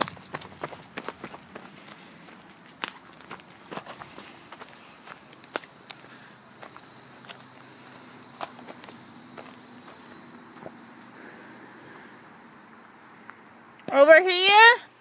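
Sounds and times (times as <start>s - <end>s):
footsteps on dirt path: 0.0s - 11.4s
high-pitched insect buzz: 0.0s - 15.0s.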